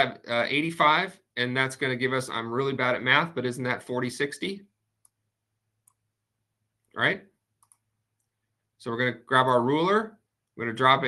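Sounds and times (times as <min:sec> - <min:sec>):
computer mouse clicks: 0:05.0 - 0:06.1, 0:07.5 - 0:08.5.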